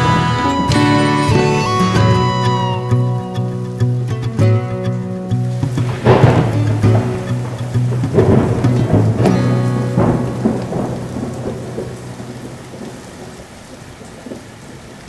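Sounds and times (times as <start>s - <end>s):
held low musical note: 0.0s - 12.4s
rain falling: 0.0s - 15.0s
rolling thunder: 5.7s - 14.9s.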